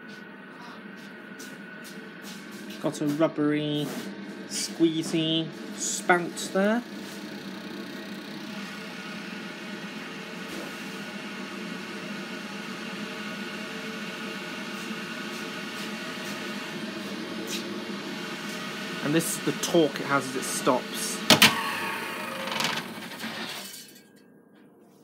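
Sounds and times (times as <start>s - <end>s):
spin dryer motor humming: 0.0s - 23.8s.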